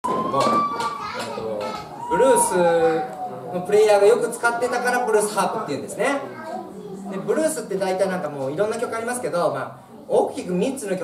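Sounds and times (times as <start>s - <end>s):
man talking into microphone: 1.4s - 6.4s.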